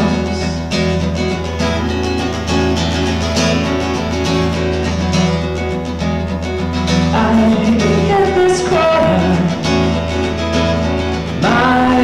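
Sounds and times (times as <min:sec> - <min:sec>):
man singing: 0:00.0 - 0:01.0, 0:07.1 - 0:09.8, 0:11.3 - 0:12.0
acoustic guitar strummed and picked: 0:00.0 - 0:12.0.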